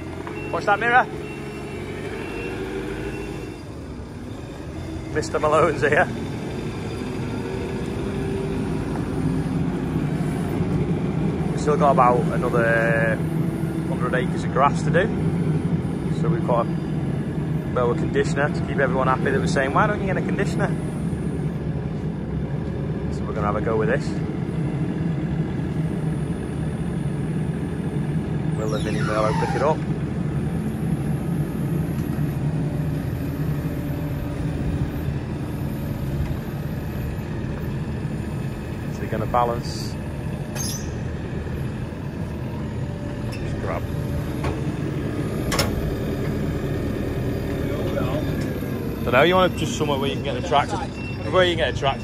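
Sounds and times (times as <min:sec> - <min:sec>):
diesel engine idling: 0:00.0 - 0:52.0.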